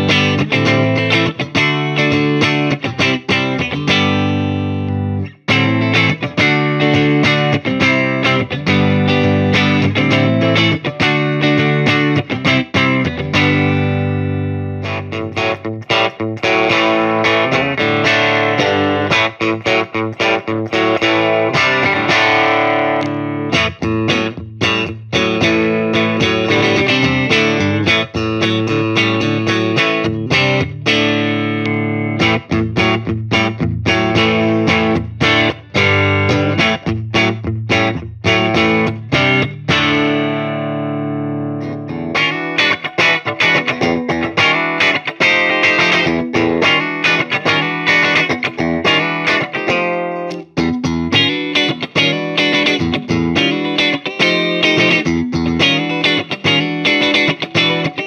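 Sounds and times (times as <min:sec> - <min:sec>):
clean electric guitar playing: 0:00.0 - 0:58.0.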